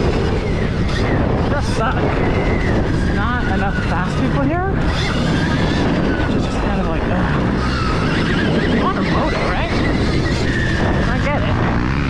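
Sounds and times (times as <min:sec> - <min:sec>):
wind noise on microphone: 0:00.0 - 0:12.0.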